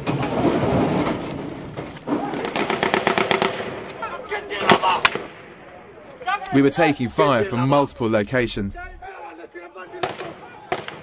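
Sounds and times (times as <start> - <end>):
rapid sharp gunshot cracks: 2.4 - 4.0, 10.0 - 11.0
small-arms gunfire: 2.4 - 4.0, 10.0 - 11.0.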